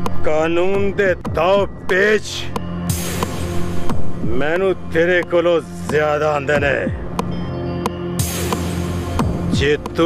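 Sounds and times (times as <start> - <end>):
dramatic background music drone: 0.0 - 10.0.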